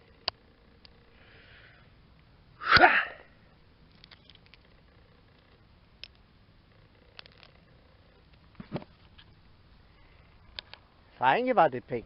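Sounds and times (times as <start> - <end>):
breathy shout: 2.6 - 3.4.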